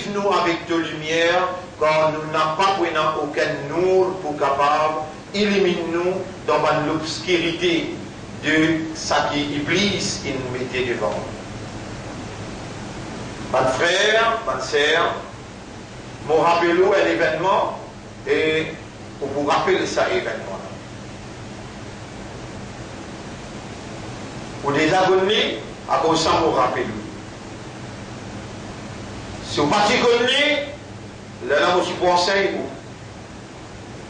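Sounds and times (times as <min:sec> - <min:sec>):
man speaking: 0:00.0 - 0:11.4, 0:13.5 - 0:15.3, 0:16.2 - 0:20.8, 0:24.6 - 0:27.2, 0:29.4 - 0:30.8, 0:31.4 - 0:32.8
background hiss: 0:00.0 - 0:34.0
faint low hum: 0:00.0 - 0:34.0.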